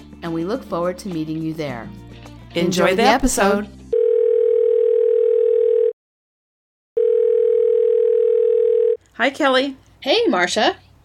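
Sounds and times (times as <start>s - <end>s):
telephone line tone: 4.0s - 6.0s, 7.0s - 9.0s.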